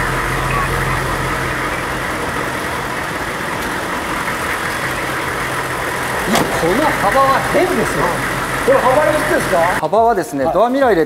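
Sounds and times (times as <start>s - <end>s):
diesel engine idling: 0.0s - 9.8s.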